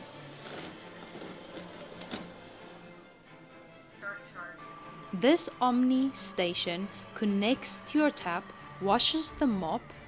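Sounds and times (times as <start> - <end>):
robot vacuum motor whir: 0.0 - 3.3, 4.6 - 10.0
background music: 0.0 - 10.0.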